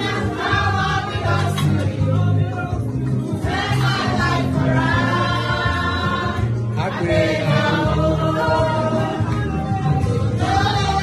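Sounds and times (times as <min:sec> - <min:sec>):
group of people singing: 0:00.0 - 0:11.0
music with low bass line: 0:00.0 - 0:11.0.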